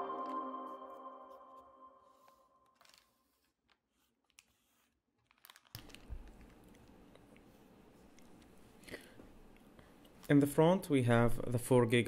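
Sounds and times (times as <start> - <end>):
foil bag crinkling: 5.2 - 6.6.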